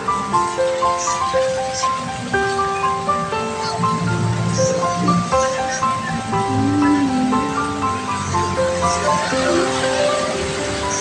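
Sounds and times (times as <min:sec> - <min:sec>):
music of held tones: 0:00.0 - 0:11.0.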